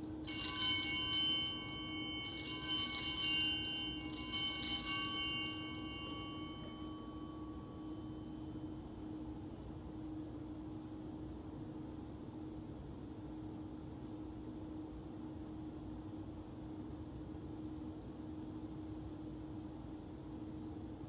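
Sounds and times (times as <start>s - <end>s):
altar bells ringing: 0.0s - 8.3s.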